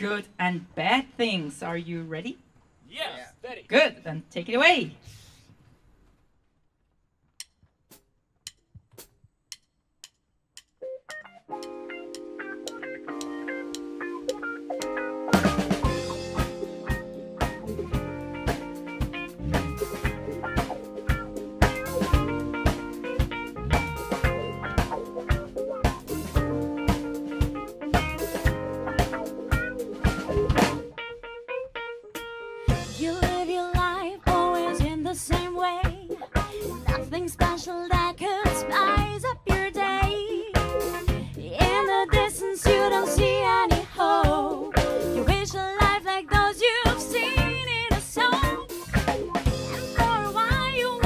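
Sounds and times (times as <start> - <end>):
sharp count-in clicks: 9.5 - 15.0
plucked notes: 10.6 - 37.2
funk band held chord: 11.5 - 37.1, 38.5 - 51.0
drum hits: 15.4 - 30.9.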